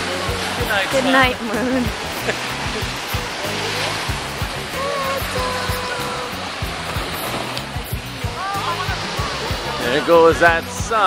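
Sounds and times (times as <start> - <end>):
ocean surf washing on shore: 0.0 - 11.0.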